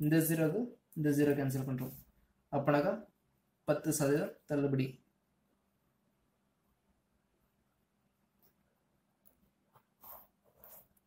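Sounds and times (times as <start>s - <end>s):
pen scratching on paper: 8.3s - 11.0s.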